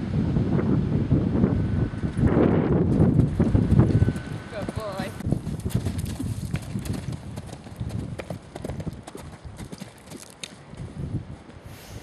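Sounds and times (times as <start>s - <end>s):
horse hoofbeats cantering on grass: 2.8s - 11.6s.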